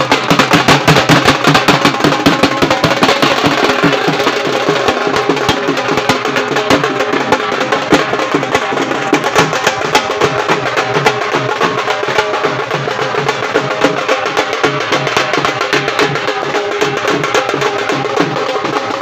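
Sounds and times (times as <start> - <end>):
loud fast drumming: 0.0 - 19.0.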